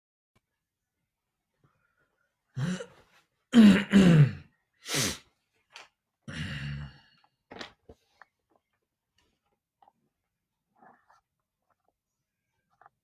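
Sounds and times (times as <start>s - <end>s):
man sighing: 2.6s - 3.0s, 6.3s - 7.2s.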